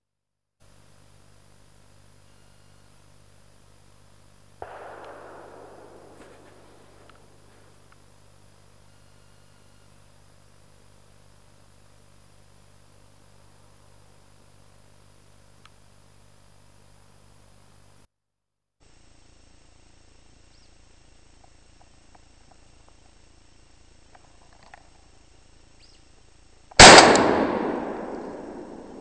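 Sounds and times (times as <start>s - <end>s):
loud shotgun shot with echo: 4.6s - 7.8s, 26.8s - 29.0s.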